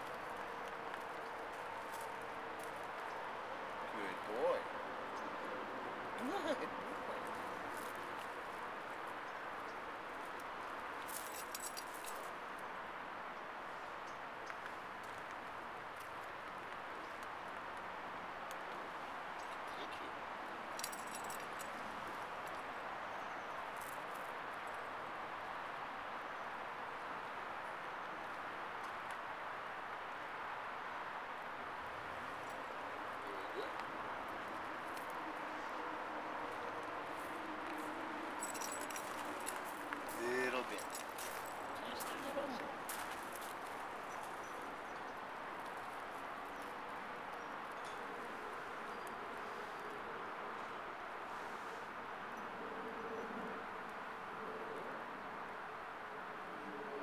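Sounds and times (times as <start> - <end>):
outdoor background hiss: 0.0 - 57.0.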